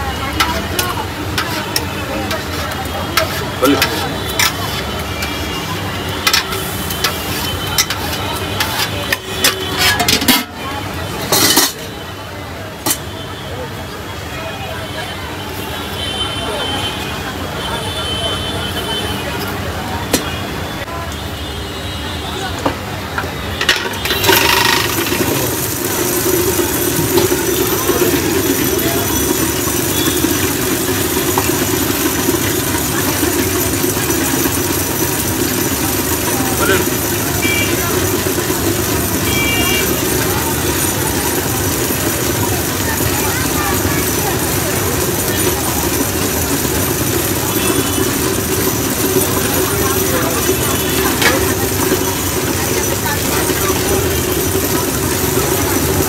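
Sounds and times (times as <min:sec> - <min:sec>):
electric churner motor hum: 0:24.0 - 0:56.0.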